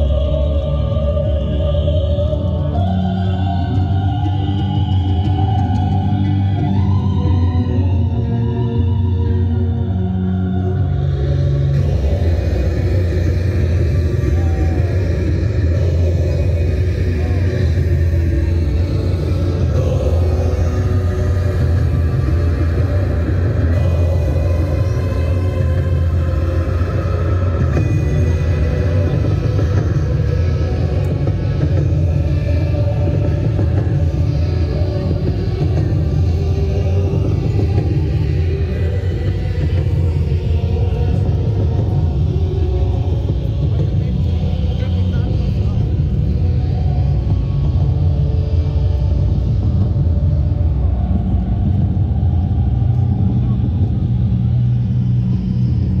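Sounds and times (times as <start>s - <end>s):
ambient music: 0.0s - 56.0s
people's voices: 0.0s - 56.0s
steady low rumble: 0.0s - 56.0s.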